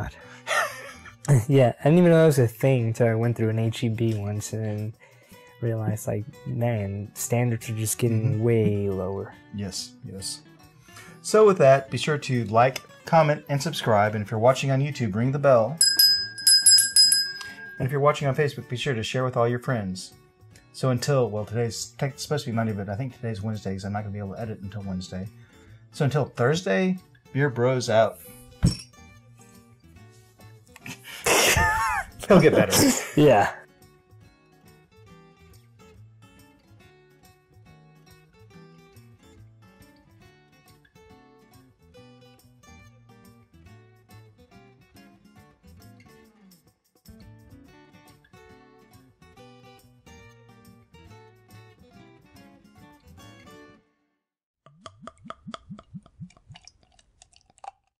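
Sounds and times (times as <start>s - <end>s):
faint background music: 0.0s - 46.4s
man laughing loudly: 0.4s - 1.6s, 30.9s - 33.4s
liquid glugging from a bottle: 54.7s - 57.9s.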